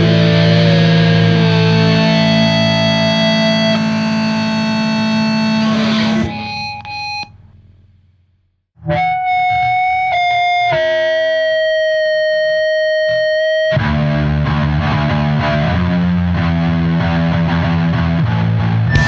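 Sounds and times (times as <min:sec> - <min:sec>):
punk band playing: 0:00.0 - 0:06.4
distorted guitar sustained note: 0:00.0 - 0:07.8, 0:08.8 - 0:19.0.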